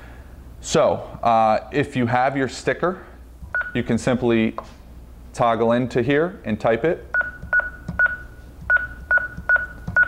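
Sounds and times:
short high keypad beeps: 7.2 - 10.0.

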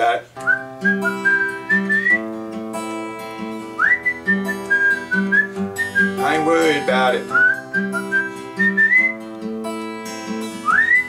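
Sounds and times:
fingerpicked acoustic guitar: 0.0 - 11.0
man whistling a melody: 0.4 - 2.3, 3.7 - 9.3, 10.4 - 11.0.

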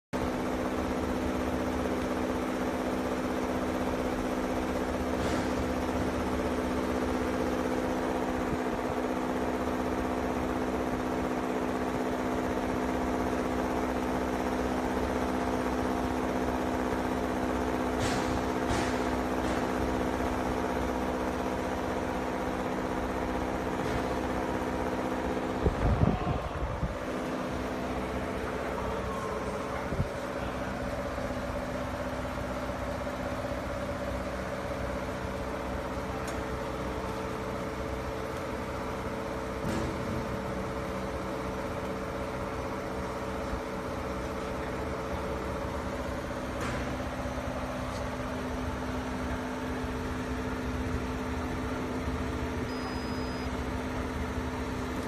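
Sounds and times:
electric machinery hum: 0.2 - 55.0
rumble with knocks: 17.8 - 20.2, 39.4 - 41.2.

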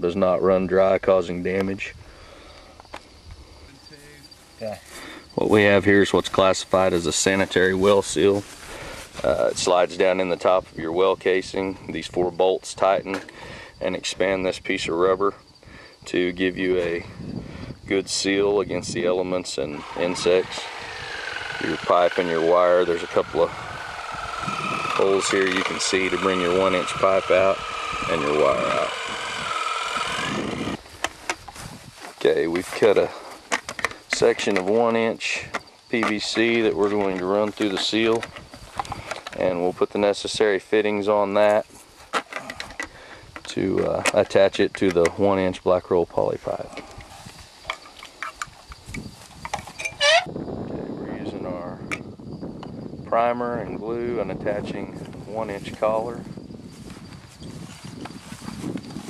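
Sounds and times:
high insect trill: 0.0 - 59.0
mechanical hum with held tones: 19.0 - 30.9.

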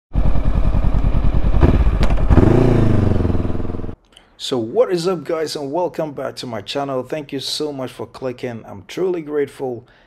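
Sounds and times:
motorcycle engine running: 0.1 - 4.0.

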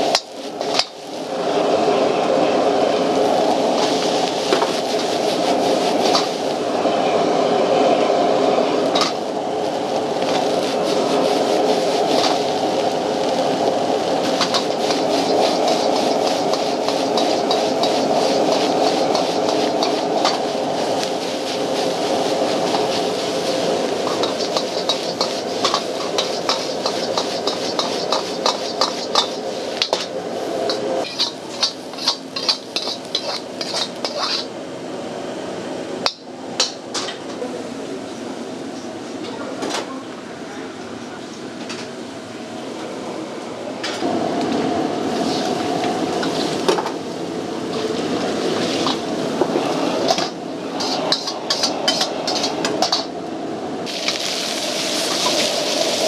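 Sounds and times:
gas burner rushing: 0.0 - 37.2, 41.7 - 56.0
metal ladle scraping a wok: 14.2 - 23.1, 23.7 - 30.1, 30.7 - 34.5, 50.0 - 53.1.

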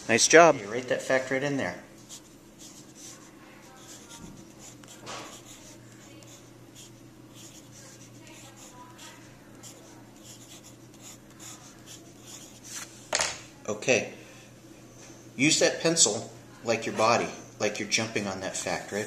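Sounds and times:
pencil scratching on paper: 2.1 - 12.9.

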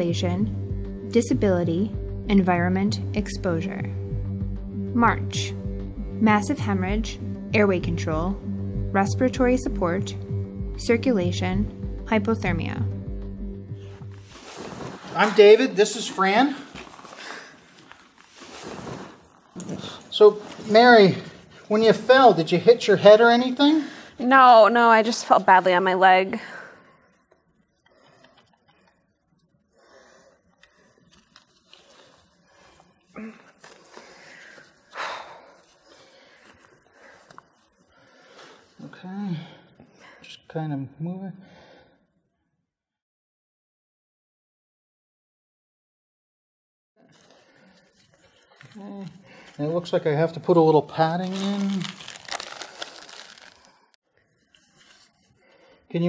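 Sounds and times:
cloth rustling: 14.0 - 22.6, 50.8 - 55.4.

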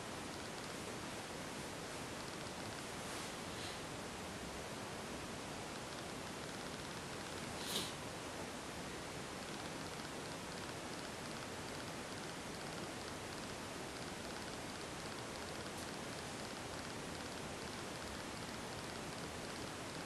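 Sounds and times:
steady hiss: 0.0 - 20.0.

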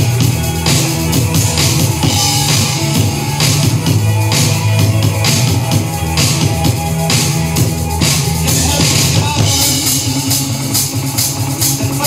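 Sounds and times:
bass line: 0.0 - 12.0
drum kit beat: 0.0 - 12.0
rock music: 0.0 - 12.0.

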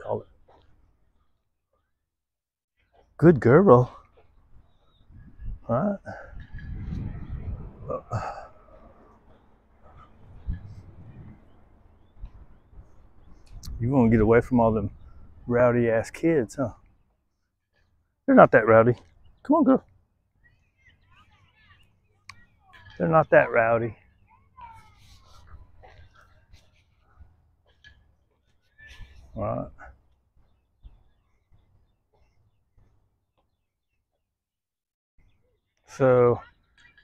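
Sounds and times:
low outdoor background: 0.0 - 37.0
faint bird chirps: 19.0 - 23.0
distant voices of children: 20.4 - 23.0, 24.0 - 29.4.

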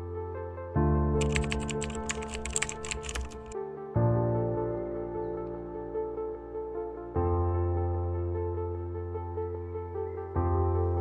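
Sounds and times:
background music: 0.0 - 11.0
computer keyboard typing: 1.2 - 3.6.

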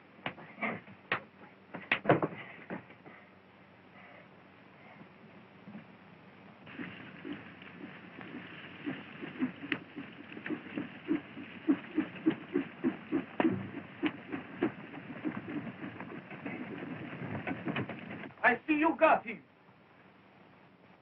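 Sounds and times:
horses galloping on dirt: 6.6 - 18.4.

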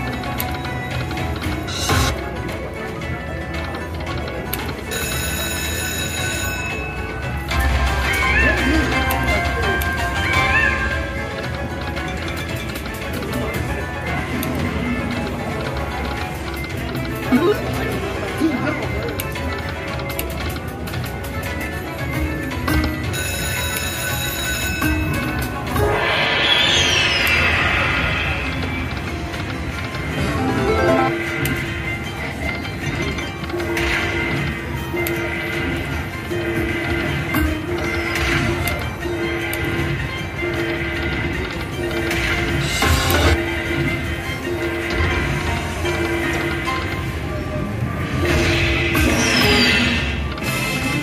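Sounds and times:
slot machine spin music: 0.0 - 51.0.

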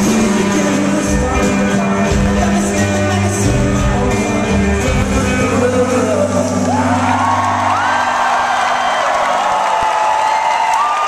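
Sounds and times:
crowd cheering: 6.4 - 11.0
rising whoops: 6.6 - 11.0.

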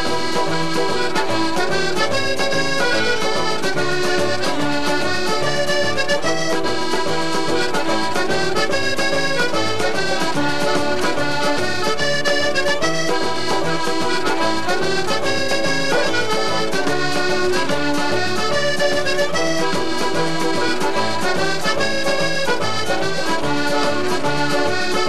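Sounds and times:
button accordion dance tune: 0.0 - 25.0.

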